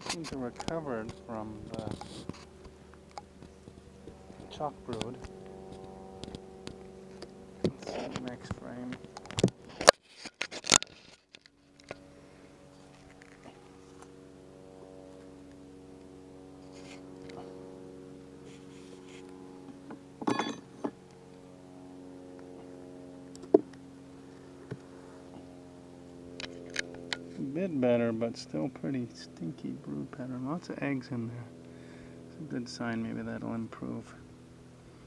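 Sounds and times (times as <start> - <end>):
honeybees buzzing: 0.0 - 9.9, 11.5 - 35.0.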